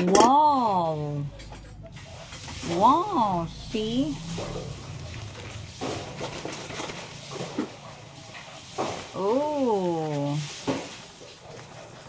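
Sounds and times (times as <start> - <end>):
low hum: 0.7 - 9.4.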